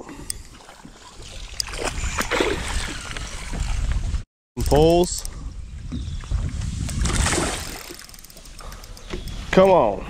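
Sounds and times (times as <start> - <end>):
water splashing: 0.4 - 4.0, 6.9 - 8.8
wind rumble on microphone: 1.2 - 7.8.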